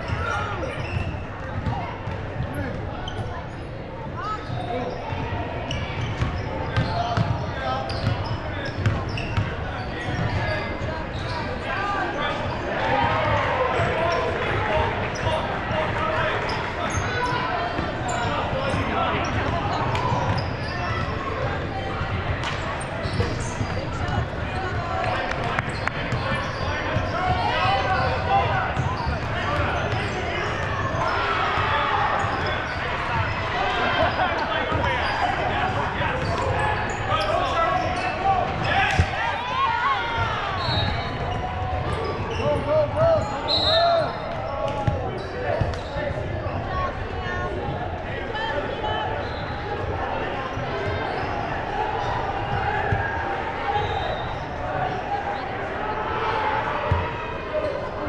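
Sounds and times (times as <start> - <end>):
players and spectators calling out: 0.0 - 58.0.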